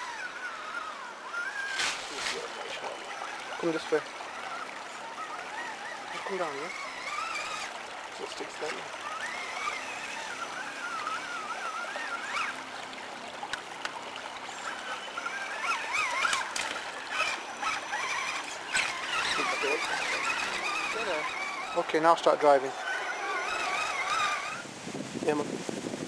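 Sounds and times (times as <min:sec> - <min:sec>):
electric motor whining: 0:00.0 - 0:24.7
shallow stream rushing: 0:00.0 - 0:26.0.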